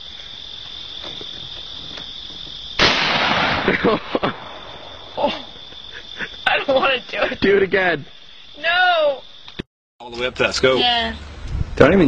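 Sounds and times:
high-pitched insect trill: 0:00.0 - 0:09.6
shotgun blast: 0:02.8 - 0:04.8
people laughing: 0:03.6 - 0:04.4, 0:05.2 - 0:07.7.

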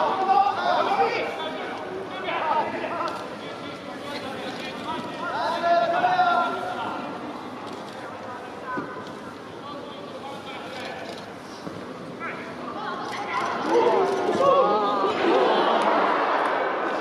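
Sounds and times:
steady background hum: 0:00.0 - 0:17.0.

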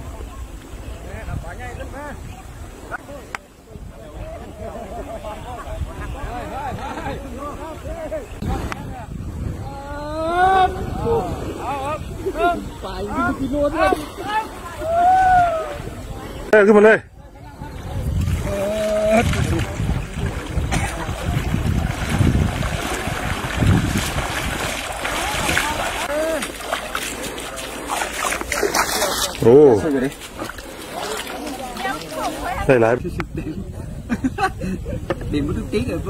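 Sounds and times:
wind rumbling on microphone: 0:00.0 - 0:36.0
voices calling out: 0:09.5 - 0:33.0
water splashing around wading legs: 0:18.2 - 0:32.8.

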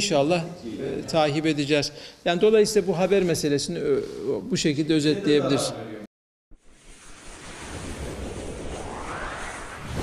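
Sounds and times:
rushing whoosh: 0:06.6 - 0:10.0.

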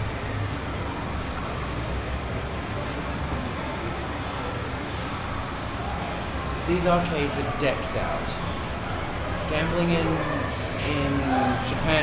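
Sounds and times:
city traffic din: 0:00.0 - 0:12.0.

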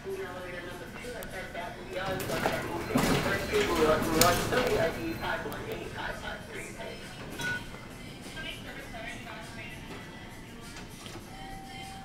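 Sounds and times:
indistinct speech: 0:00.0 - 0:07.1.

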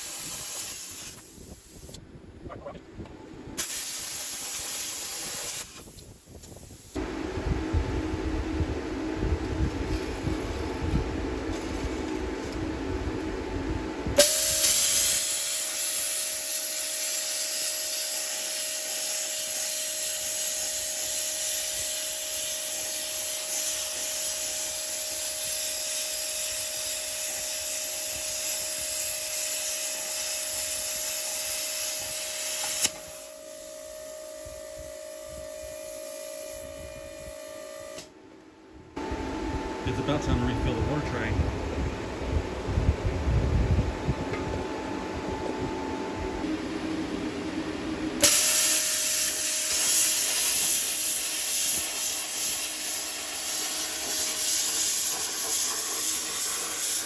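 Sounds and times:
air hiss: 0:00.0 - 0:02.0, 0:03.6 - 0:07.0, 0:14.2 - 0:38.1, 0:48.2 - 0:57.0
plasma cutter arc hissing: 0:00.0 - 0:02.0, 0:03.6 - 0:07.0, 0:14.2 - 0:38.1, 0:48.2 - 0:57.0
low rumble: 0:07.0 - 0:14.2, 0:38.6 - 0:48.2.

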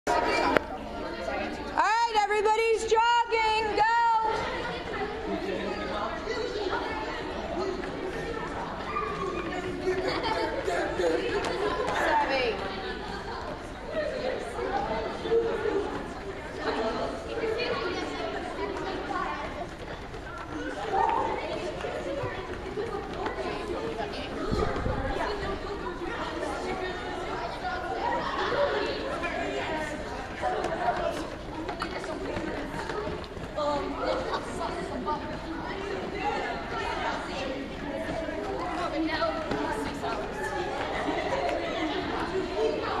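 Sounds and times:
children chattering: 0:00.0 - 0:43.0.

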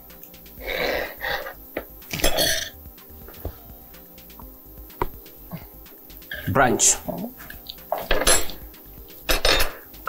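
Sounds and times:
plates and cutlery clattering: 0:07.9 - 0:08.6, 0:09.3 - 0:09.9.

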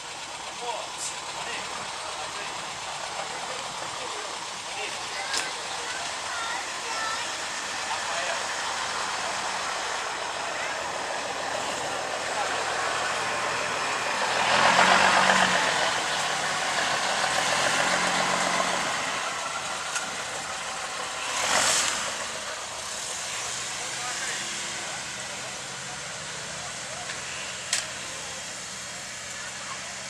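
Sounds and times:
background voices: 0:00.0 - 0:30.0.

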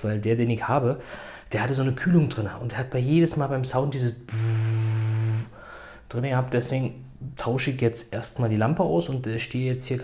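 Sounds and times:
man imitating fan buzz: 0:04.3 - 0:05.7.

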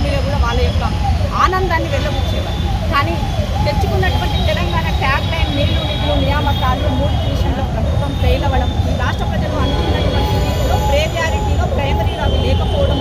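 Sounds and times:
woman speaking into microphones: 0:00.0 - 0:13.0.

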